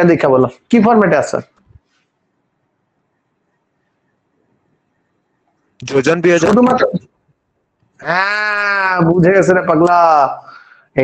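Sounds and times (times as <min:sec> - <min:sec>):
man speaking: 0:00.0 - 0:01.4, 0:05.8 - 0:07.0, 0:08.0 - 0:11.0.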